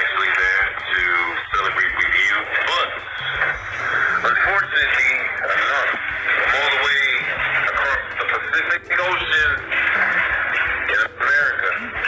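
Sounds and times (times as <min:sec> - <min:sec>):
man talking: 0:00.0 - 0:03.1, 0:04.1 - 0:09.7, 0:10.8 - 0:12.0
background music with bass line: 0:00.0 - 0:12.0.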